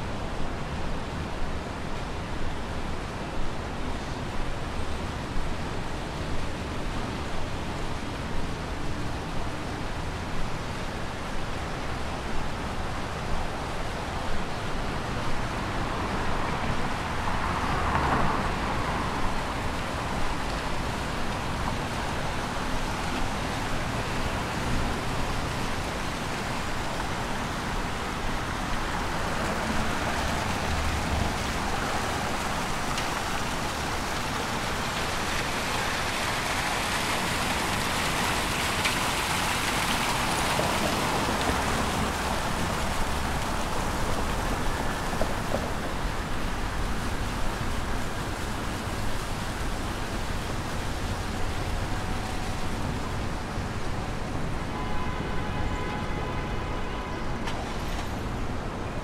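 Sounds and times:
fountain water splashing: 0.0 - 59.0
low rumble of city traffic: 0.0 - 59.0.

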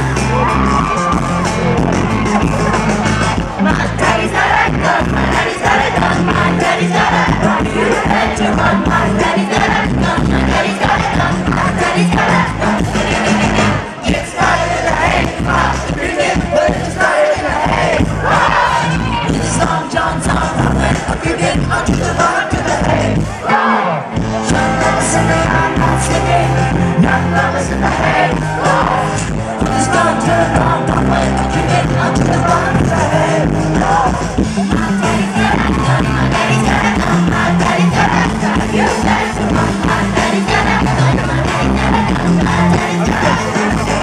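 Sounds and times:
crowd noise: 0.0 - 44.0
rock band playing: 0.0 - 44.0
person singing: 18.6 - 44.0.

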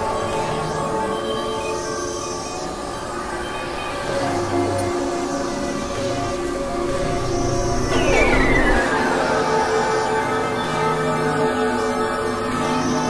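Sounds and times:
synthesizer drone tones: 4.0 - 13.0.

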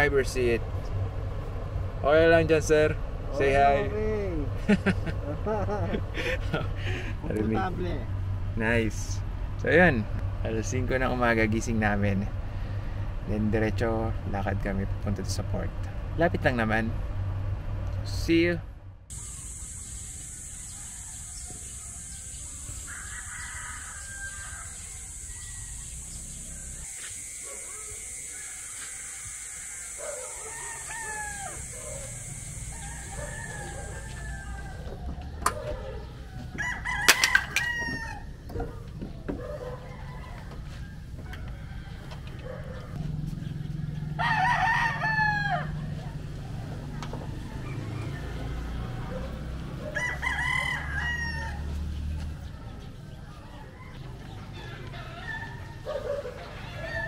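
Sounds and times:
high-pitched hiss: 19.1 - 34.4
roosters crowing: 19.1 - 57.0.

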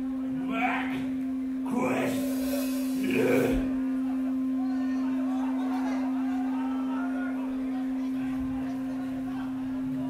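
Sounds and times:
steady electronic hum: 0.0 - 10.0
person speaking: 1.7 - 3.7.

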